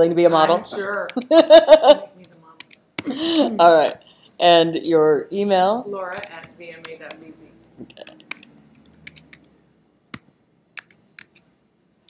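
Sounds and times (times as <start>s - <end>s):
computer keyboard key clicks: 2.2s - 3.1s, 8.0s - 9.5s, 10.2s - 11.4s.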